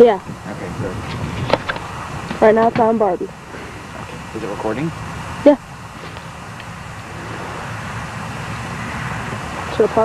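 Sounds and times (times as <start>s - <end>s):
outdoor background noise: 0.0s - 10.0s
man's voice: 0.4s - 1.4s, 3.5s - 4.9s.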